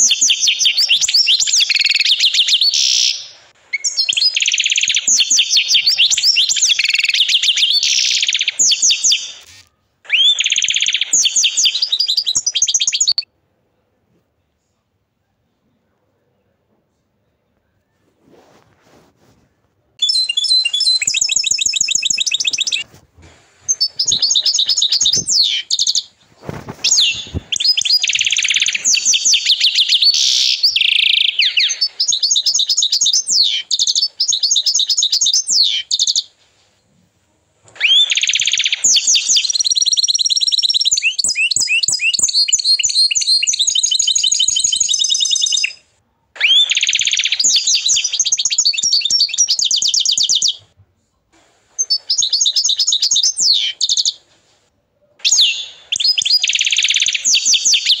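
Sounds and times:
canary singing trills: 0.0s - 13.3s, 20.0s - 36.4s, 37.8s - 50.7s, 51.8s - 54.3s, 55.2s - 58.0s.

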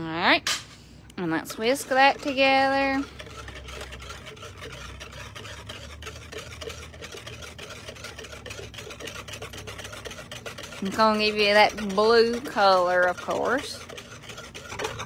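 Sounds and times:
wire whisk beating soapy liquid: 1.2s - 15.0s.

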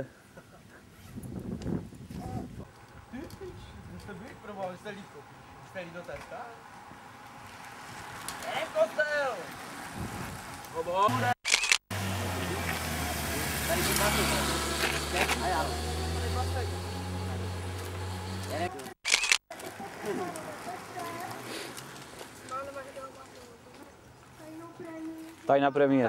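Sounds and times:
outdoor ambience: 0.0s - 26.0s
motorcycle engine droning: 11.9s - 18.9s
voices: 12.2s - 26.0s.

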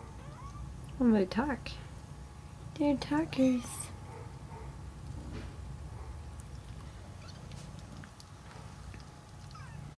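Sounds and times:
kittens mewing: 0.1s - 0.7s, 9.4s - 10.0s.

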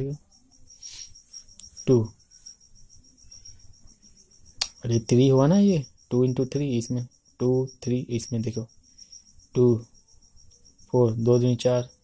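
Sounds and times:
crickets chirring: 0.0s - 12.0s.

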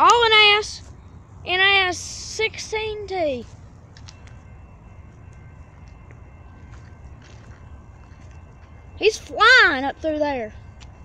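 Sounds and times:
diesel locomotive rumble: 0.0s - 11.0s.

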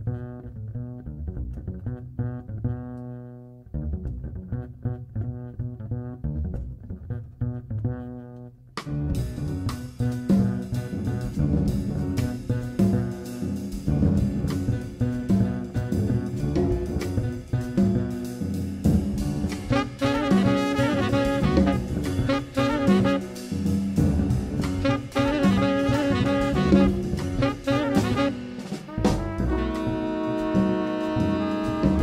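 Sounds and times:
plucked double bass: 0.0s - 32.0s
piano: 9.1s - 32.0s
drum kit cymbals: 9.2s - 32.0s.

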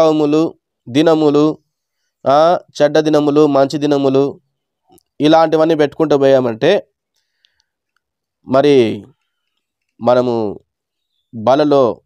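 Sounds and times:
man preaching: 0.0s - 1.6s, 2.2s - 4.4s, 5.1s - 6.9s, 8.4s - 9.1s, 10.0s - 10.6s, 11.4s - 12.0s.

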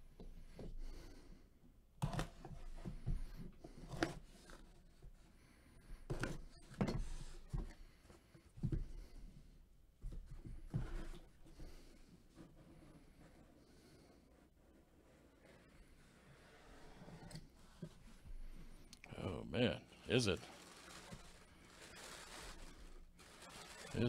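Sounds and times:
cardboard scraping and rustling: 20.2s - 24.0s.

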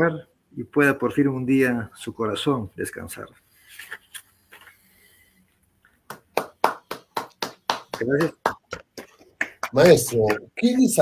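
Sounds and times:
person clapping hands: 6.0s - 10.6s.

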